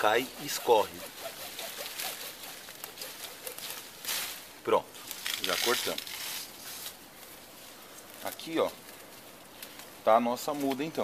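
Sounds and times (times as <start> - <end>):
hand saw cutting branch: 0.0 - 4.3.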